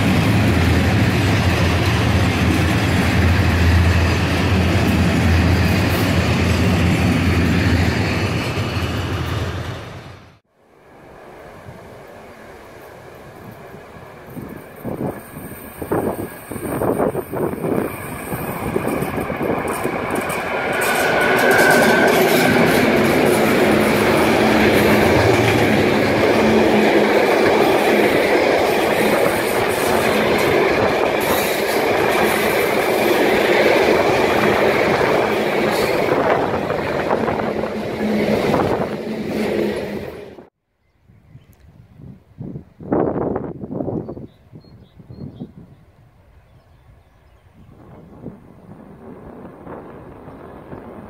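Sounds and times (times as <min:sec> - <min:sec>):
freight train wheels clattering: 0:13.5 - 0:40.4.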